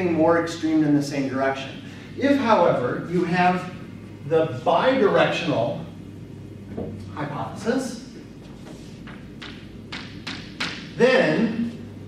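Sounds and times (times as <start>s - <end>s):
chalk tapping on chalkboard: 9.0s - 10.9s.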